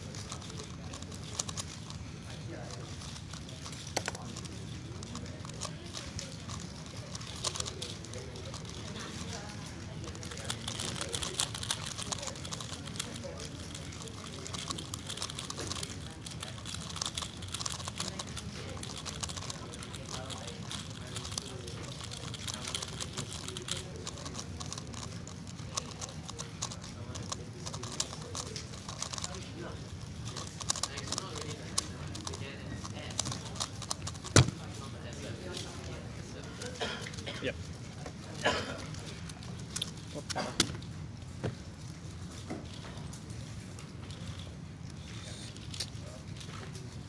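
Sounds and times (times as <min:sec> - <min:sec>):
low background hum: 0:00.0 - 0:47.0
puzzle cube clicking: 0:00.2 - 0:02.0, 0:02.7 - 0:08.8, 0:10.2 - 0:29.4, 0:30.0 - 0:34.6.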